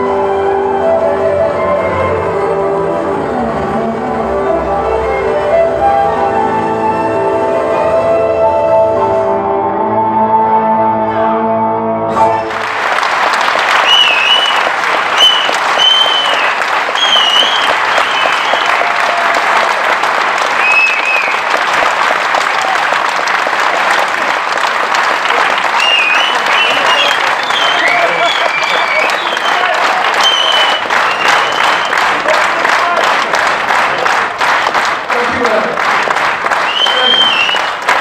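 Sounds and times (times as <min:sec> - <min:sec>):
held music chord: 0:00.0 - 0:12.5
audience applauding: 0:12.2 - 0:38.0
whistles and cheers: 0:13.6 - 0:19.8, 0:20.5 - 0:21.6, 0:25.5 - 0:32.4, 0:36.6 - 0:37.8.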